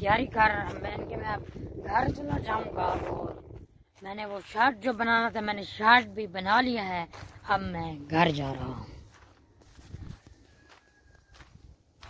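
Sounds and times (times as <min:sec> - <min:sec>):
faint footsteps: 0:00.0 - 0:12.0.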